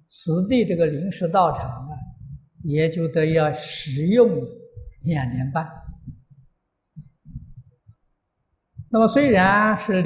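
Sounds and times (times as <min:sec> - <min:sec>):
person speaking: 0:00.0 - 0:06.4, 0:08.8 - 0:10.0
soft low thuds: 0:05.7 - 0:08.1, 0:08.7 - 0:09.6.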